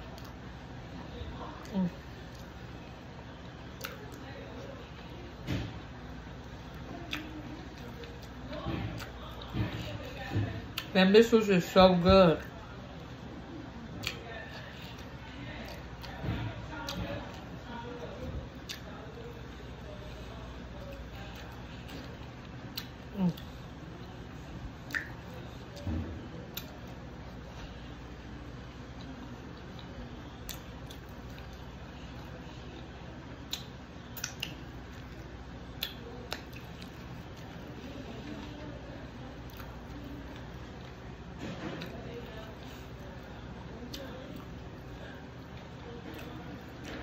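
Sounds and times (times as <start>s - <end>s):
low room hum: 0.0s - 47.0s
chewing and mouth noises: 1.4s - 5.2s, 6.2s - 10.9s, 13.8s - 47.0s
wet mouth clicks and smacks: 14.0s - 14.2s, 24.8s - 25.2s, 33.5s - 35.1s, 35.7s - 36.9s.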